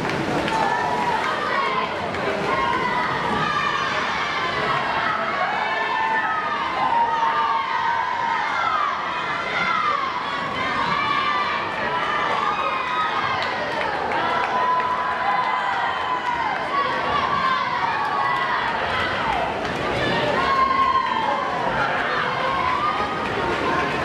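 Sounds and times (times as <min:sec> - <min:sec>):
crowd shouting and cheering: 0:00.0 - 0:24.0.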